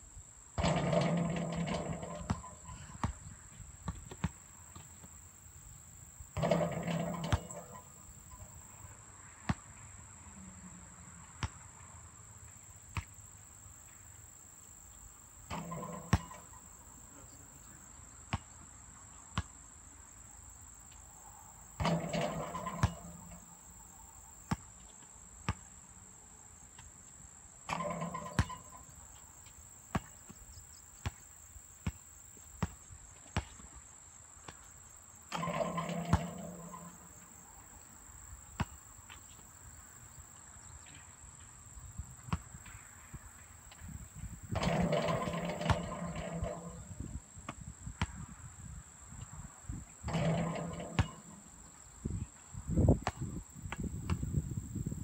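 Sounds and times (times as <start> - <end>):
ball clanging off metal rim: 0.6 - 3.1, 6.4 - 8.6, 15.5 - 16.7, 21.8 - 23.5, 27.7 - 28.9, 35.3 - 37.2, 44.5 - 47.0, 50.0 - 51.5
basketball bouncing on asphalt: 0.6 - 5.2, 6.4 - 8.5, 9.3 - 10.0, 11.3 - 11.8, 12.9 - 13.2, 15.5 - 16.6, 18.3 - 18.7, 19.3 - 19.6, 21.8 - 23.5, 24.4 - 25.8, 27.7 - 28.7, 29.4 - 33.8, 35.3 - 37.4, 38.6 - 39.5, 40.9 - 48.4, 50.1 - 51.6, 52.8 - 54.8.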